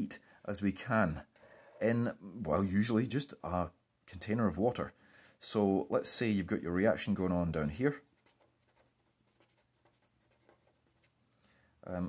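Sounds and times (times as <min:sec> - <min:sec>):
felt pen scratching on paper: 0:08.0 - 0:11.2.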